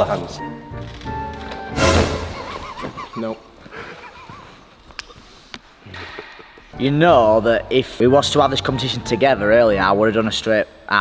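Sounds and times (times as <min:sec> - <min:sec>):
background music: 0:00.0 - 0:04.2, 0:05.8 - 0:11.0.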